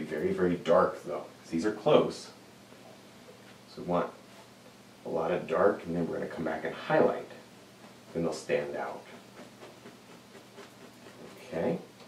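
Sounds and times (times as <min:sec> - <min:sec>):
low room hum: 0:00.0 - 0:12.0
brush scratching on canvas: 0:07.2 - 0:11.8.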